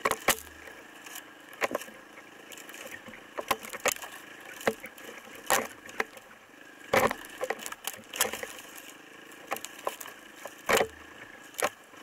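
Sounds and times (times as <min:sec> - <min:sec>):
branches snapping and brushing: 0:00.0 - 0:12.0
faint steady hum: 0:00.0 - 0:12.0.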